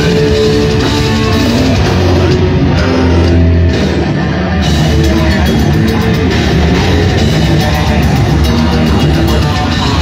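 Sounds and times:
bass guitar: 0.0 - 10.0
drum kit: 0.0 - 10.0
electric guitar: 0.0 - 10.0.

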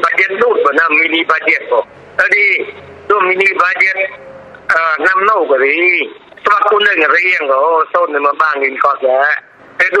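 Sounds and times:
news reader talking: 0.0 - 10.0.

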